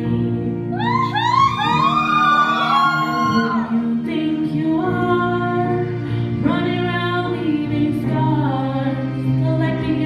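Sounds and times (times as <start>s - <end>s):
sustained musical accompaniment: 0.0s - 10.0s
woman singing into microphone: 0.0s - 10.0s.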